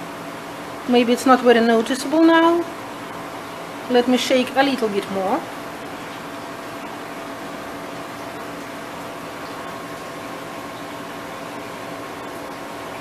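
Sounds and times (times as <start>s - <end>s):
air handling hum and hiss: 0.0s - 13.0s.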